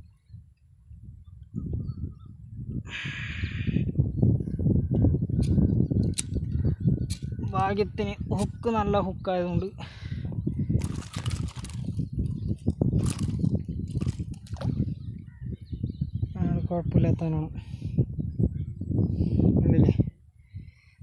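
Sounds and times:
camera handling rumble: 5.4 - 7.6, 10.7 - 14.9.

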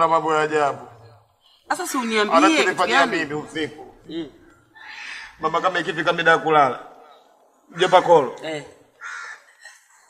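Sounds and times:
man's voice: 2.3 - 4.4
crow cawing: 4.6 - 6.4, 7.0 - 9.9.

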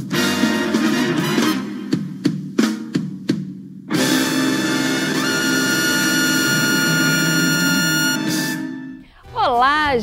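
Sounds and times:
music with sustained chord: 4.0 - 9.2.

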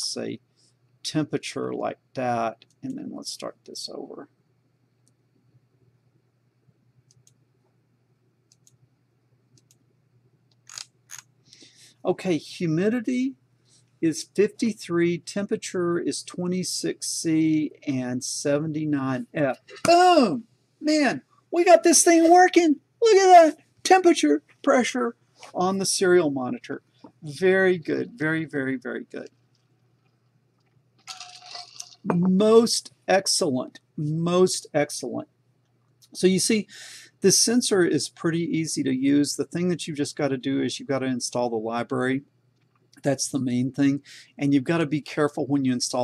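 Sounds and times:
person speaking: 0.0 - 0.4, 1.1 - 4.2, 12.0 - 13.4, 14.0 - 29.3, 31.1 - 35.2
faint low hum: 0.0 - 46.0
computer mouse clicks: 7.1 - 7.4, 8.5 - 8.8, 9.5 - 9.8
breathy hiss: 36.6 - 37.2, 44.0 - 44.4.

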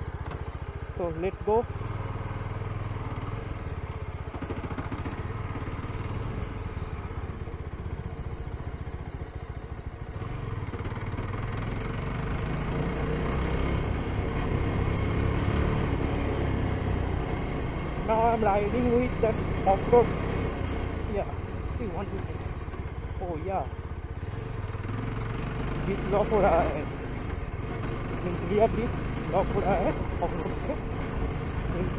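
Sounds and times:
motorcycle engine running: 0.0 - 31.9.

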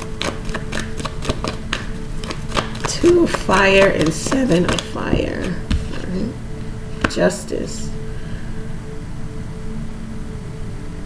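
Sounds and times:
cards being handled clicking: 0.0 - 6.2
faint two-note hum: 0.0 - 11.0.

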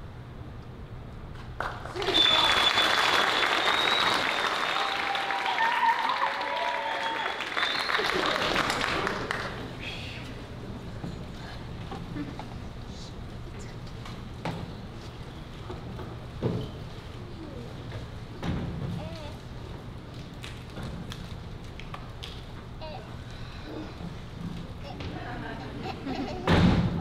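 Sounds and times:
low hum of hall: 0.0 - 27.0
faint murmur: 8.8 - 20.0, 22.7 - 27.0.

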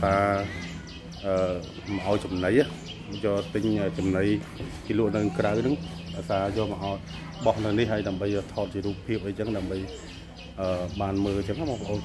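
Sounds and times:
man talking: 0.0 - 0.6, 1.2 - 12.0.

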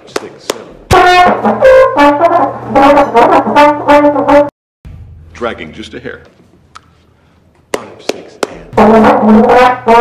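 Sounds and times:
solo trombone jazz phrase: 0.9 - 4.5, 8.8 - 10.0.

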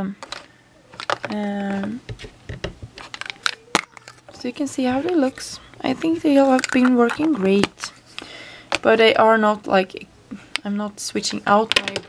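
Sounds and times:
plastic tools clicking: 1.0 - 2.0, 3.0 - 4.4, 5.8 - 8.9.

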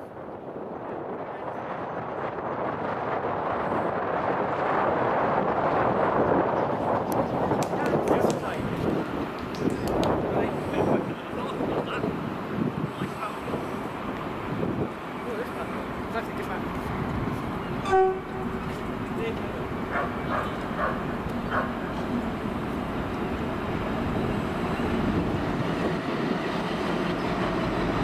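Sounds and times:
distant diesel train approaching: 0.0 - 28.0
wind buffeting microphone: 0.0 - 28.0
station ambience: 10.1 - 28.0.

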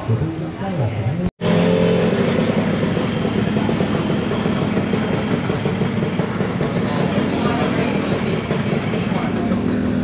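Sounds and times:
scooter engines idling: 1.4 - 10.0.

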